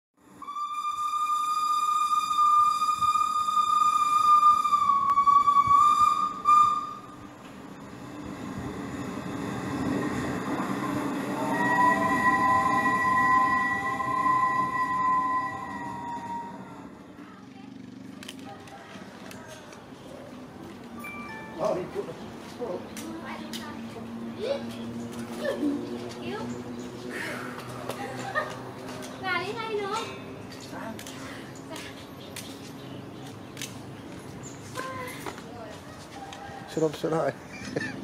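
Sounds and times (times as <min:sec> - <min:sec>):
lower chord whistle: 0:00.2 - 0:17.1
low train rumble: 0:00.2 - 0:38.0
steam locomotive whistle: 0:00.3 - 0:08.0, 0:10.5 - 0:17.0.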